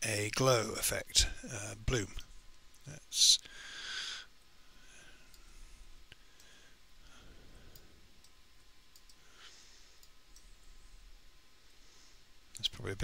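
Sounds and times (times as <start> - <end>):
computer mouse clicks: 7.7 - 9.2.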